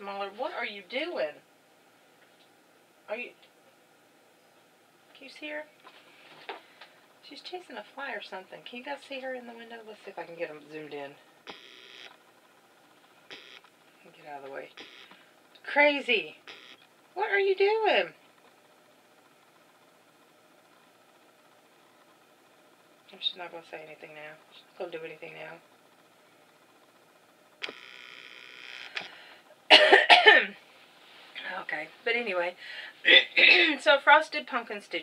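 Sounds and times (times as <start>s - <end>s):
camcorder zoom motor whirring: 11.4s - 12.2s, 13.3s - 13.7s, 14.8s - 15.2s, 16.4s - 16.9s, 27.6s - 29.1s
woman clearing her throat: 29.7s - 30.6s, 33.1s - 33.8s.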